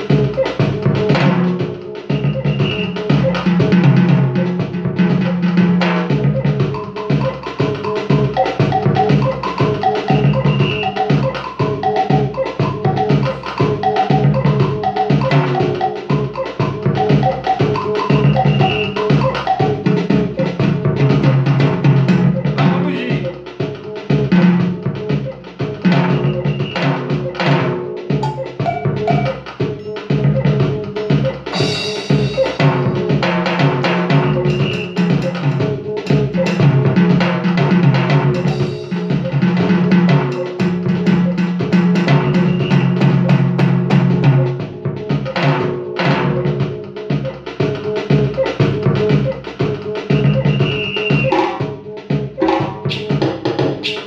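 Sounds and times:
electronic hand percussion rhythm: 0:00.0 - 0:54.0
bass line: 0:06.2 - 0:23.3, 0:47.2 - 0:51.4.

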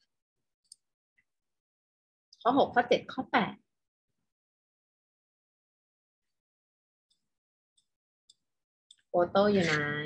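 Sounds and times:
person speaking: 0:09.2 - 0:10.0.

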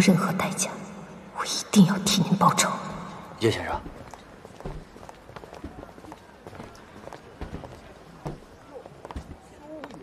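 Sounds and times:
low street background: 0:00.0 - 0:10.0
footsteps on pavement: 0:03.8 - 0:10.0.

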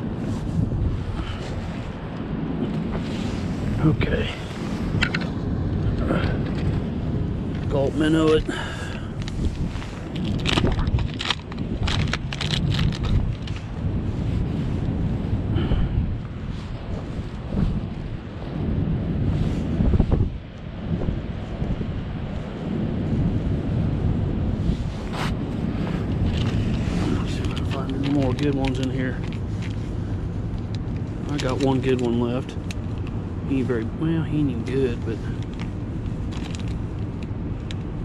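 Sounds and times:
wind on microphone: 0:00.0 - 0:38.0
crackles and rustles of packet: 0:08.8 - 0:13.8, 0:26.0 - 0:33.7, 0:34.4 - 0:38.0.

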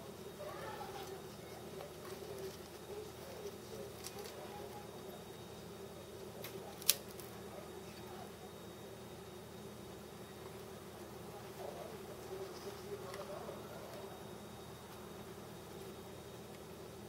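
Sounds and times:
faint murmured voices: 0:00.0 - 0:17.0
low steady hum: 0:00.0 - 0:17.0.

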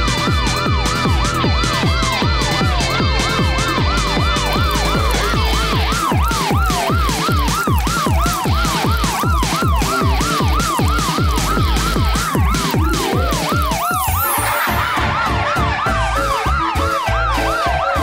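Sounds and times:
electronic siren-like wail: 0:00.0 - 0:18.0
steady pounding beat: 0:00.0 - 0:18.0.

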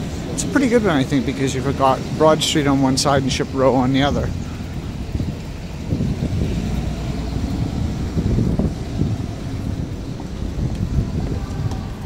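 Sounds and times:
road traffic: 0:00.0 - 0:12.0
wind buffeting microphone: 0:00.0 - 0:12.0.

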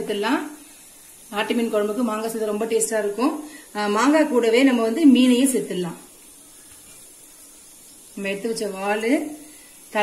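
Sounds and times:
curry simmering hiss: 0:00.0 - 0:10.0.

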